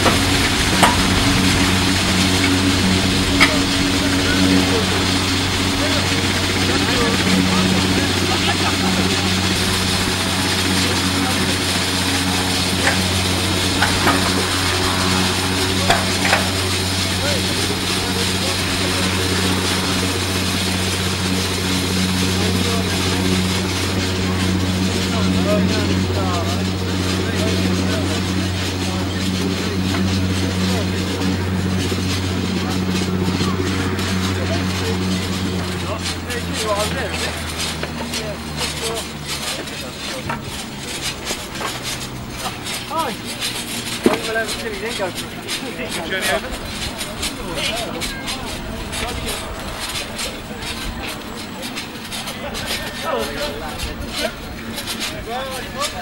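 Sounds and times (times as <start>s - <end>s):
engine drone: 0.0s - 56.0s.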